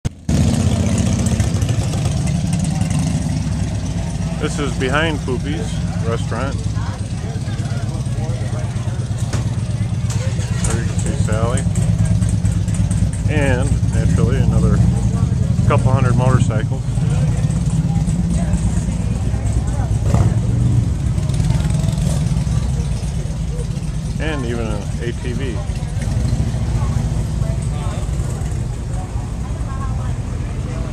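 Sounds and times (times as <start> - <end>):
motorcycle engine idling: 0.1 - 30.9
people talking: 4.2 - 12.4, 13.2 - 30.9.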